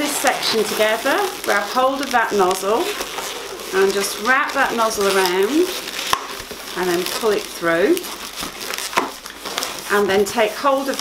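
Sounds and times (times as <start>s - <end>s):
balloon crackles: 0.0s - 11.0s
balloons rubbing and squeaking: 0.0s - 11.0s.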